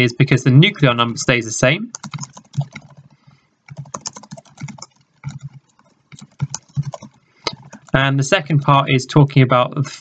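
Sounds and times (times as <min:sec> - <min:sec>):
typing on computer keyboard: 0:01.9 - 0:08.0.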